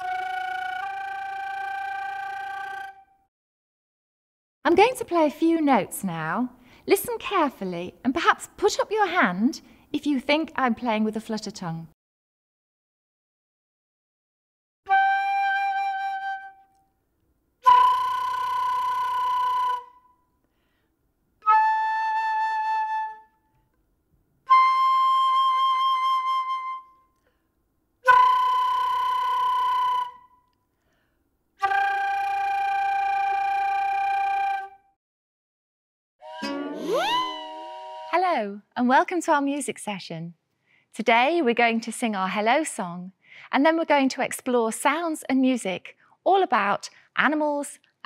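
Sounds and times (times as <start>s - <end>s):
flute playing held notes: 0.0s - 3.3s, 14.9s - 16.8s, 17.6s - 20.1s, 21.4s - 23.3s, 24.5s - 27.0s, 28.1s - 30.4s, 31.6s - 35.0s, 36.2s - 38.2s
person speaking: 36.8s - 37.4s.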